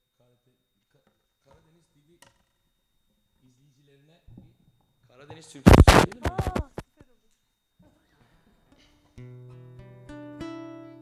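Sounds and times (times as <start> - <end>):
faint voice: 5.7 - 6.8.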